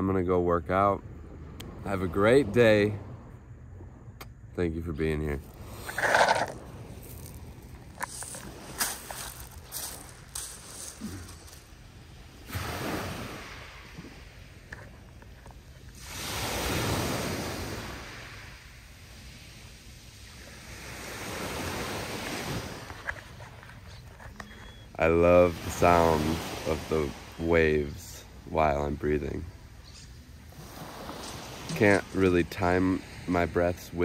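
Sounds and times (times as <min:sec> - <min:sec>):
waves washing up pebble shore: 0:05.4 - 0:23.4, 0:25.0 - 0:29.7, 0:30.4 - 0:34.0.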